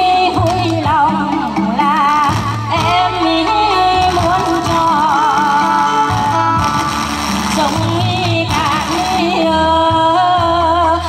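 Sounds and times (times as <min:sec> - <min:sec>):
instrumental accompaniment: 0:00.0 - 0:11.0
woman singing with vibrato: 0:00.0 - 0:11.0.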